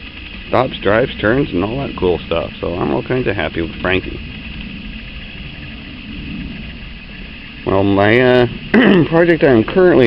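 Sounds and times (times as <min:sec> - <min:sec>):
low rumble: 0:00.0 - 0:10.0
soft hiss: 0:00.0 - 0:10.0.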